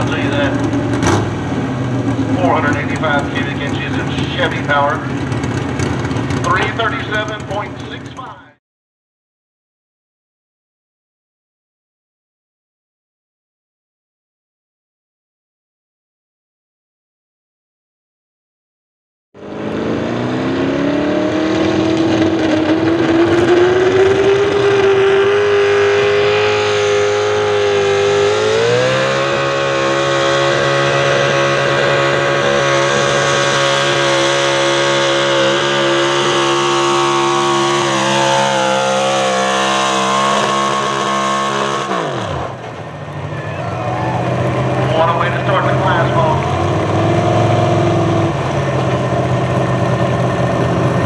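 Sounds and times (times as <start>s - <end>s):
truck engine at full throttle: 0.0s - 8.6s, 19.4s - 51.0s.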